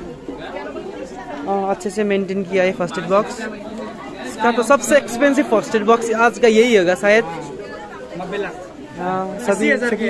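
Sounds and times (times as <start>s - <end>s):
young men talking: 0.0s - 10.0s.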